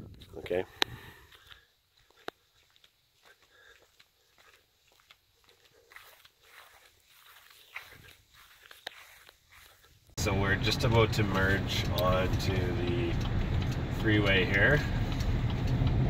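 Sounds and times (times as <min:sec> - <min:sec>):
faint ticks and rustles: 0:00.1 - 0:10.2.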